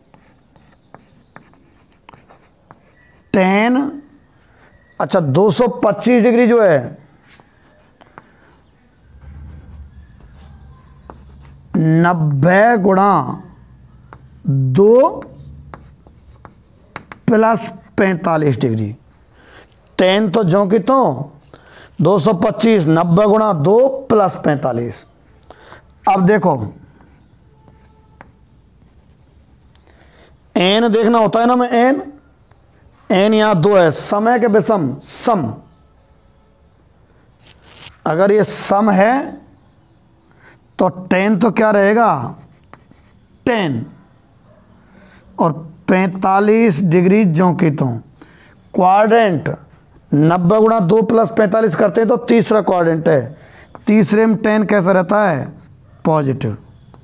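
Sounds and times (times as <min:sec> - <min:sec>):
chalk scratching on blackboard: 0:00.0 - 0:03.4, 0:07.2 - 0:11.8, 0:14.1 - 0:14.5, 0:15.1 - 0:18.0, 0:26.9 - 0:29.8, 0:37.4 - 0:38.0, 0:42.2 - 0:43.2
chalk tapping: 0:00.0 - 0:03.4, 0:07.3 - 0:08.6, 0:09.3 - 0:11.8, 0:14.1 - 0:17.7, 0:26.9 - 0:29.8, 0:42.4 - 0:43.2.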